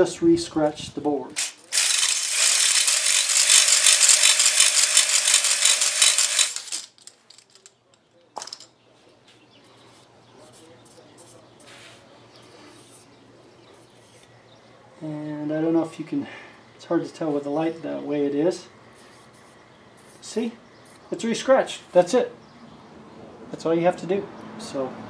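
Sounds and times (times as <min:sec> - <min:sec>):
power drill hone grinding: 0:01.4 - 0:06.9
handling of metal cylinder: 0:02.8 - 0:08.7.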